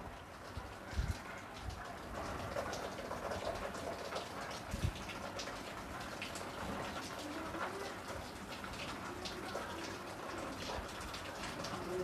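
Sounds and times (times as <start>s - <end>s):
bird cooing: 11.8s - 12.0s.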